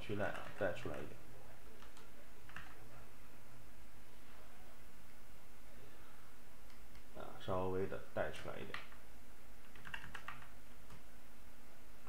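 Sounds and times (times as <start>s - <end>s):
faint steady hum: 0.0s - 12.0s
computer keyboard keys clicking: 0.3s - 0.6s, 1.8s - 2.8s, 9.6s - 11.0s.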